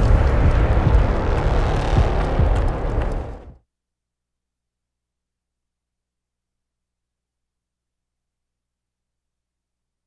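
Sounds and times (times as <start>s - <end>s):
rumbling bass-heavy rush: 0.0s - 3.6s.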